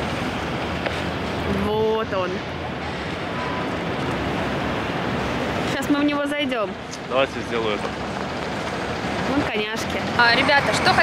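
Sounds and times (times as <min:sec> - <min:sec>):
street traffic rumble and hiss: 0:00.0 - 0:11.0.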